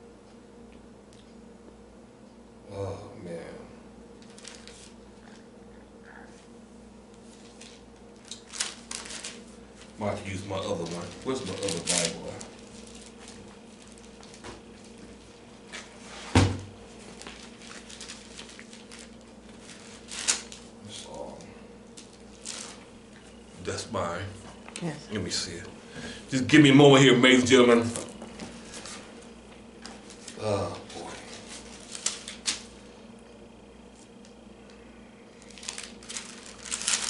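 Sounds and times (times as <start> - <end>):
paper rustling: 4.2 - 5.4, 7.3 - 20.7, 22.0 - 22.9, 29.8 - 32.9, 35.3 - 37.0.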